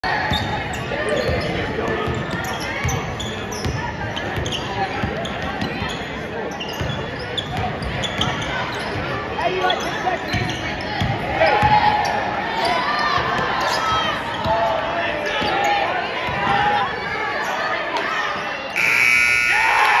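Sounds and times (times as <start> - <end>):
spectators talking: 0.0 - 20.0
sneakers squeaking: 0.2 - 14.6
game clock buzzer: 18.8 - 20.0.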